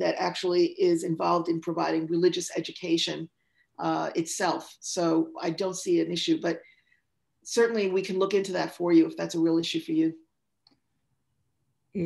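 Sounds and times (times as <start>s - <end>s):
person speaking: 0.0s - 6.7s, 7.4s - 10.3s.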